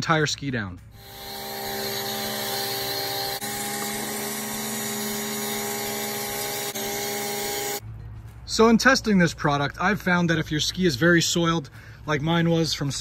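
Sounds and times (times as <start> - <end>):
pressure washer running: 1.0 - 7.8.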